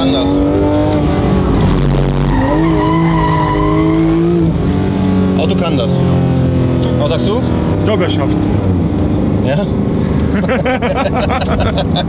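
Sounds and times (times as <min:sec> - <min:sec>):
car engine revving: 0:00.0 - 0:12.0
tyres squealing: 0:02.2 - 0:04.4.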